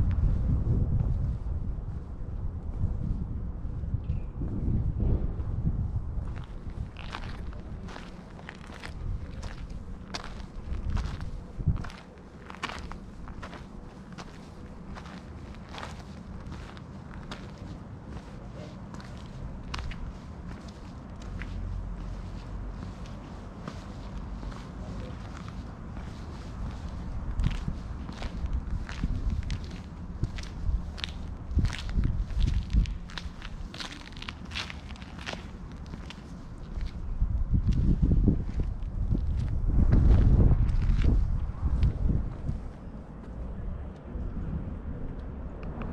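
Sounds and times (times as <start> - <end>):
low rumble: 0.0 - 45.9
footsteps on stone paving: 6.2 - 43.4.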